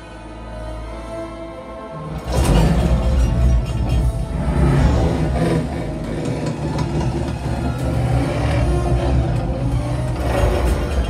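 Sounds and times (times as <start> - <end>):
orchestral film score: 0.0 - 11.0
deep rumble: 2.1 - 11.0.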